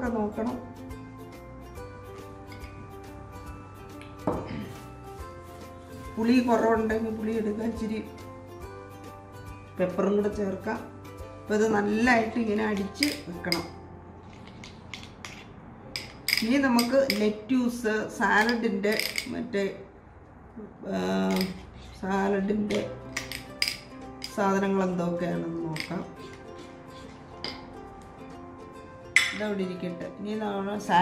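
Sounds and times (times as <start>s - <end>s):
background music: 0.0s - 19.4s, 21.3s - 31.0s
metal spoon scraping ceramic dish: 21.3s - 23.9s, 25.7s - 27.7s
spoon stirring in ceramic ramekin: 25.7s - 27.8s.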